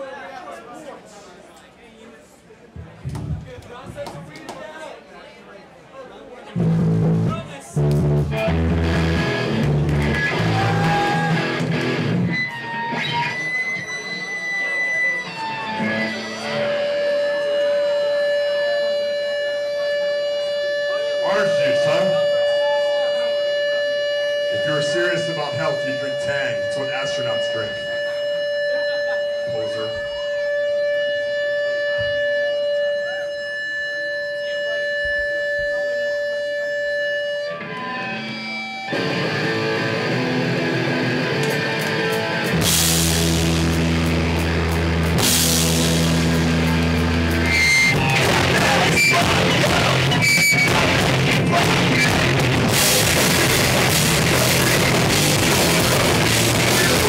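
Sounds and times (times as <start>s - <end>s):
distorted electric guitars and bass: 6.6s - 57.0s
guitar feedback tone: 6.6s - 57.0s
drum and cymbal hits: 42.4s - 57.0s.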